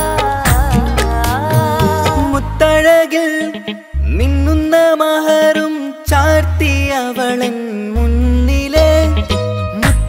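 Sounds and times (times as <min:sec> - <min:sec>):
deep bass note: 0:00.0 - 0:02.9
backing music: 0:00.0 - 0:04.5, 0:08.6 - 0:10.0
person singing: 0:00.0 - 0:10.0.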